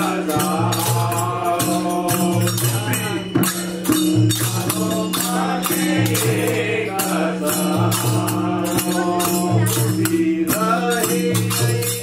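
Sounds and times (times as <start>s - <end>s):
group singing devotional song: 0.0s - 12.0s
hand drum beat: 0.0s - 12.0s
jingling percussion: 0.0s - 12.0s.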